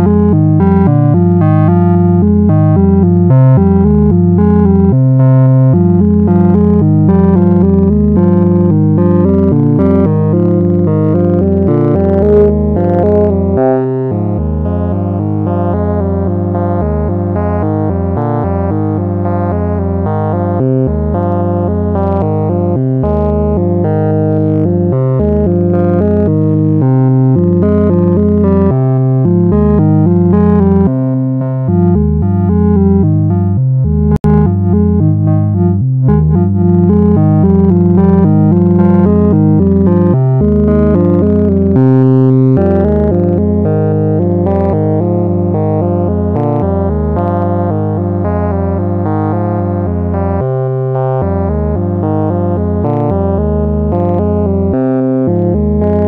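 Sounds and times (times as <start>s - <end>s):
sequenced synthesizer notes: 0.0s - 56.0s
sustained low synth bass: 0.0s - 56.0s.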